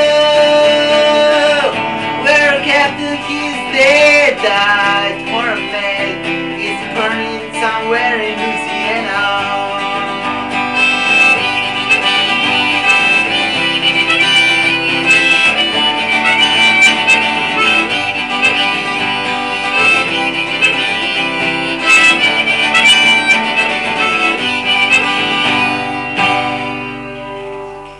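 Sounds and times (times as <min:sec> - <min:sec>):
harmonica playing: 0:00.0 - 0:27.9
strummed acoustic guitar: 0:00.0 - 0:27.9.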